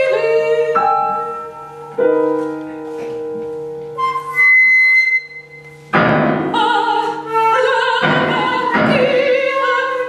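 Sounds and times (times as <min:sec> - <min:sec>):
soprano singing with vibrato: 0:00.0 - 0:01.4, 0:06.4 - 0:10.0
piano: 0:00.0 - 0:10.0
flute: 0:03.9 - 0:05.8.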